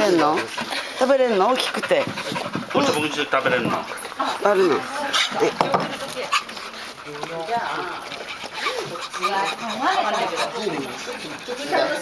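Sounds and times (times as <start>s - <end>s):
dog sniffing sounds: 0.0s - 12.0s
people talking to a dog: 0.0s - 12.0s.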